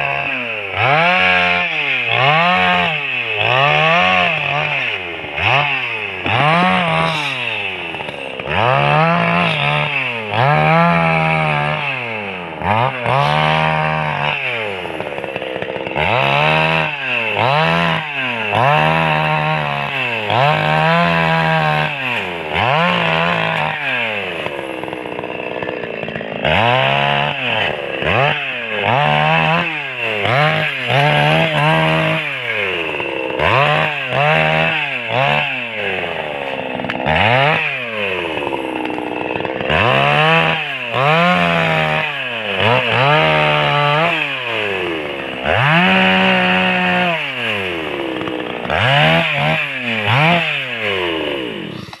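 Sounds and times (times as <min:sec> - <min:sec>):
chainsaw revving and cutting: 0:00.0 - 0:52.0.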